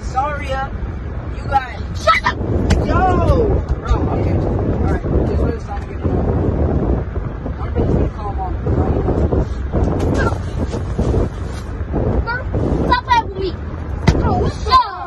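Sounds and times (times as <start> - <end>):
low car rumble: 0.0 - 15.0
rubbing and bumping on seats: 7.6 - 14.7.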